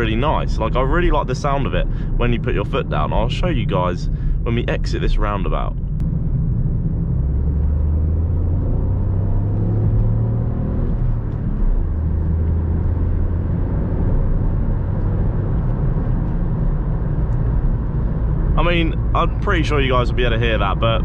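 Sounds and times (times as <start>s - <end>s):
car engine under full throttle: 0.0s - 21.0s
road and wind noise: 0.0s - 21.0s.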